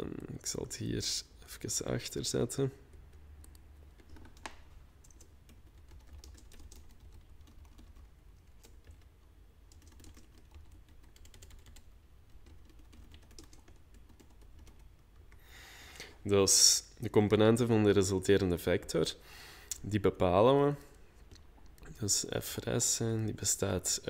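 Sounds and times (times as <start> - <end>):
typing on computer keyboard: 2.9 - 15.4.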